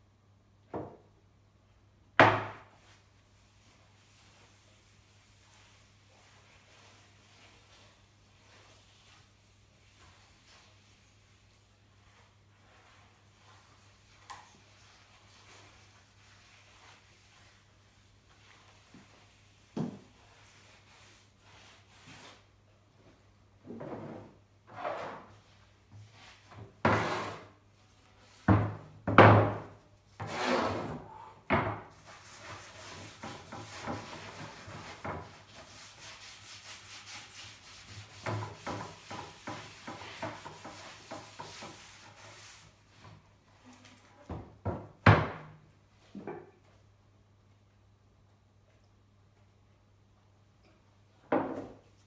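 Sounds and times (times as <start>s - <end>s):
cloth rubbing on wood: 2.8s - 22.5s, 32.0s - 43.0s.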